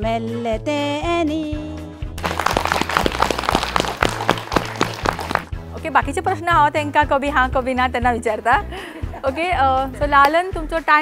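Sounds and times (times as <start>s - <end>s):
women clapping: 2.2s - 5.5s.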